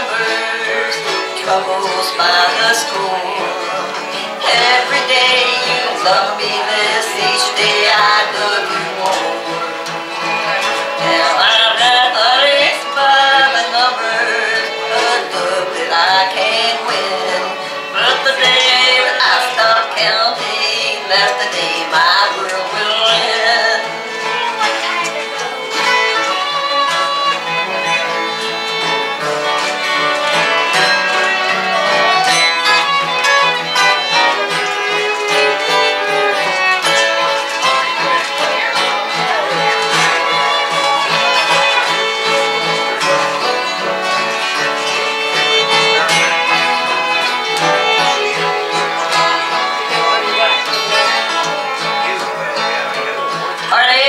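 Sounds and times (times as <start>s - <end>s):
fiddle with sliding notes: 0.0s - 54.0s
strummed acoustic guitars: 0.0s - 54.0s.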